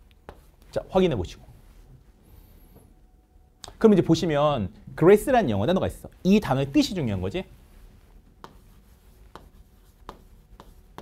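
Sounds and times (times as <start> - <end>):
chalk tapping: 0.1 - 0.7, 8.0 - 11.0
chalk scratching on chalkboard: 0.2 - 0.7, 7.6 - 11.0.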